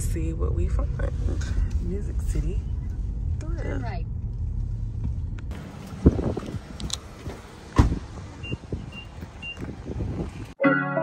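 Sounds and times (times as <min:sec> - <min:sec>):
car engine hum: 0:00.0 - 0:10.6
car door thuds: 0:07.2 - 0:09.9.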